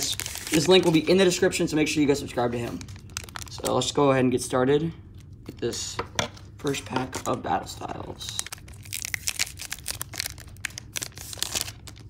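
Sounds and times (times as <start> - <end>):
foil wrapper crinkling: 0.0 - 1.5, 2.4 - 3.8, 8.2 - 12.0.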